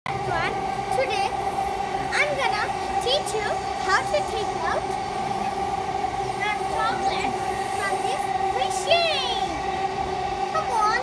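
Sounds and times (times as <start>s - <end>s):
steady background hum: 0.1s - 11.0s.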